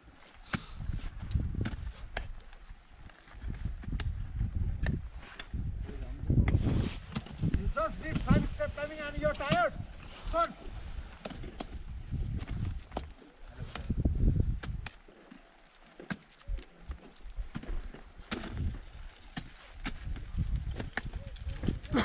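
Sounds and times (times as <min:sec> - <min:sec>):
wind rumbling on microphone: 0:00.6 - 0:15.0, 0:16.4 - 0:22.0
ice axe and crampons striking ice: 0:14.6 - 0:21.2.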